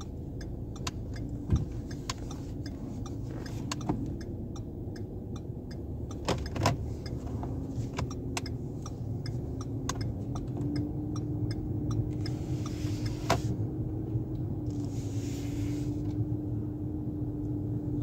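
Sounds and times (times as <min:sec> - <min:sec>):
turn signal clicking: 0:00.0 - 0:16.3
engine and road rumble: 0:00.0 - 0:18.0.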